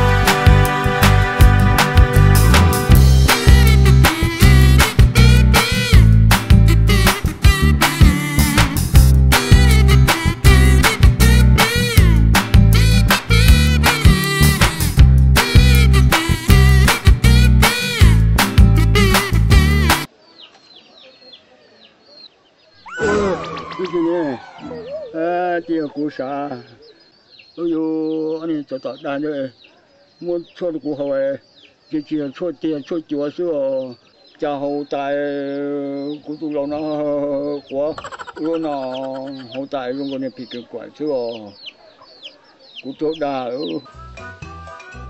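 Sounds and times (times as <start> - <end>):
music with a beat: 0.0 - 20.1
chicks peeping: 20.2 - 45.0.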